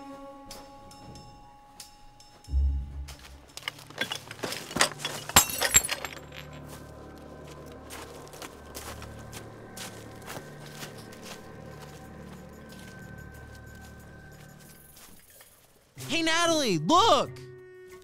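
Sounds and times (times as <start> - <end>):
music of low held tones: 0.0 - 15.2.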